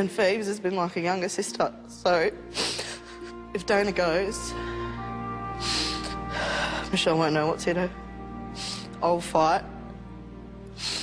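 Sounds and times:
soft background music: 0:00.0 - 0:11.0
woman breathing tearfully: 0:02.4 - 0:03.5, 0:04.4 - 0:07.0, 0:08.2 - 0:09.0, 0:10.6 - 0:11.0.

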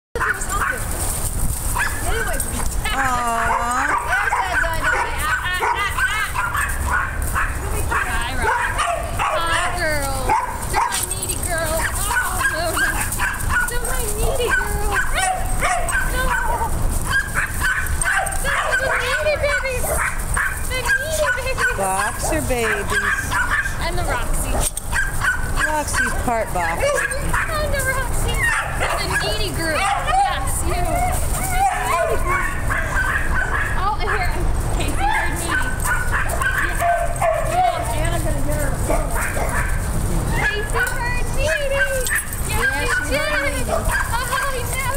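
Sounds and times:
dogs whining and yipping: 0:01.7 - 0:34.2, 0:34.9 - 0:44.9.

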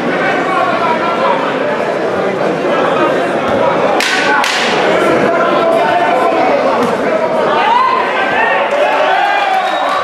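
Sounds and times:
spectators shouting: 0:04.0 - 0:10.0.

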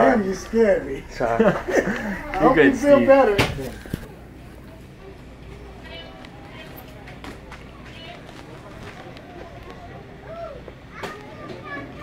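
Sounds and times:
steady low hum: 0:00.0 - 0:11.7
indistinct shoppers' voices: 0:00.0 - 0:12.0.

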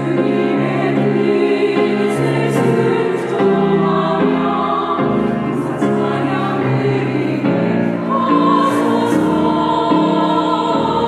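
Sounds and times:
women's choir singing a hymn: 0:00.0 - 0:11.0.

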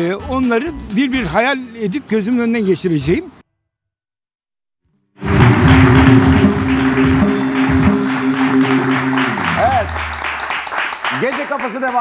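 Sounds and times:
band playing held chords: 0:05.2 - 0:10.4
audience clapping: 0:05.2 - 0:12.0.

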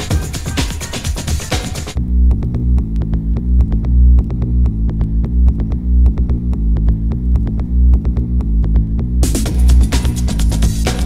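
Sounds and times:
deep pulsing bassline: 0:00.0 - 0:11.0.

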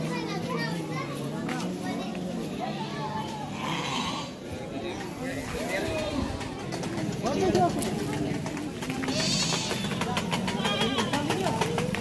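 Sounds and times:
children's voices: 0:00.0 - 0:12.0
crowd chatter: 0:00.0 - 0:12.0.

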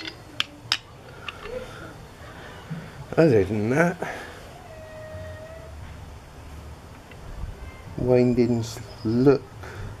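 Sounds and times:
metal parts clicking: 0:00.0 - 0:01.6.

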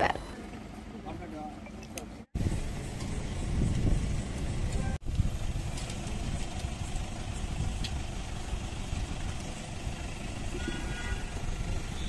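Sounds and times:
outdoor background noise: 0:00.0 - 0:12.0
vehicle engine idling: 0:00.0 - 0:12.0.

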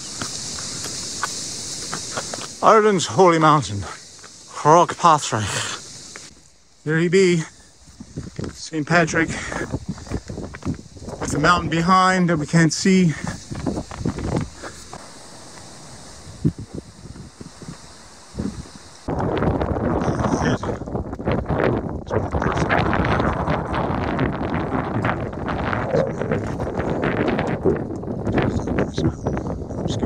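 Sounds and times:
footsteps crunching on stones: 0:00.0 - 0:02.7, 0:03.4 - 0:04.5, 0:07.7 - 0:15.8
soft outdoor hiss: 0:00.0 - 0:30.0
wind buffeting microphone: 0:07.2 - 0:30.0.

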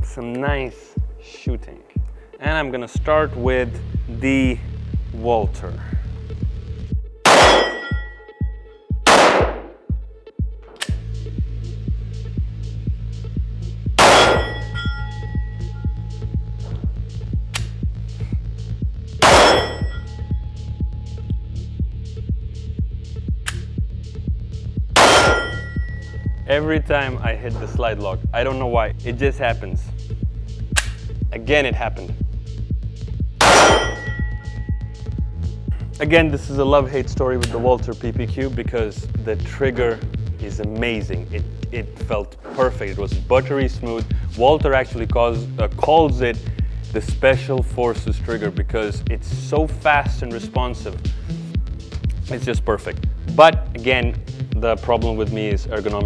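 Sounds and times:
background music with steady beat: 0:00.0 - 0:56.0
pistol shots with echo: 0:07.3 - 0:08.0, 0:09.1 - 0:09.8, 0:14.0 - 0:14.7, 0:19.2 - 0:20.0, 0:25.0 - 0:25.7, 0:33.4 - 0:34.2
loud metallic clang: 0:07.3 - 0:08.2, 0:14.0 - 0:15.0, 0:19.2 - 0:20.1, 0:25.0 - 0:26.0, 0:33.4 - 0:34.8.

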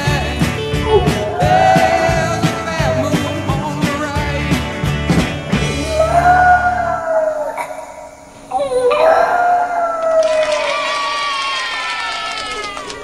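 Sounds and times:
rock song: 0:00.0 - 0:06.9
small dog howling: 0:00.6 - 0:02.4, 0:05.9 - 0:13.0.

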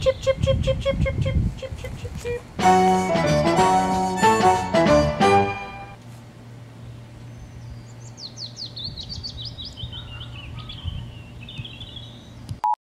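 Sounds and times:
songbird singing: 0:06.7 - 0:12.6.

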